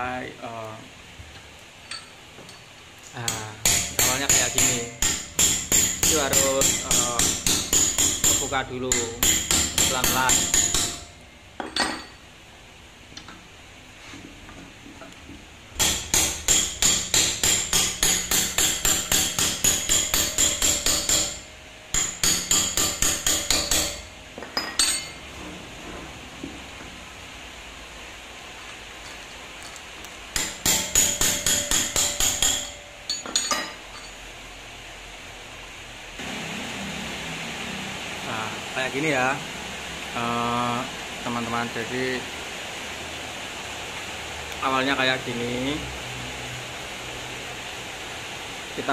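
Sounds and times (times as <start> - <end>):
hammer striking steel: 3.2 - 12.2, 15.8 - 25.2, 30.4 - 34.2.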